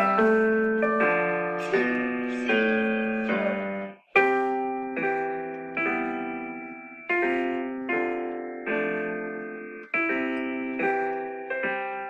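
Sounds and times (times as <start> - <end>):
piano duet chords: 0.0 - 12.0.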